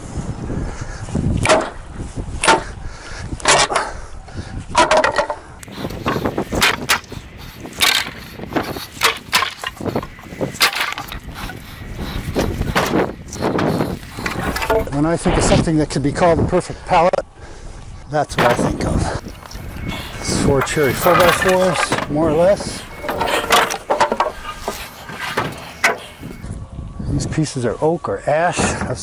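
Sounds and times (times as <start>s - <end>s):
boards cracking: 10.6s - 11.2s.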